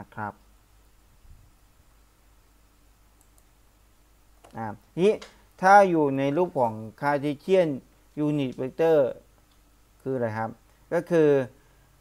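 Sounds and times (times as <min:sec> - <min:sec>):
faint short clicks: 0:03.2 - 0:03.5.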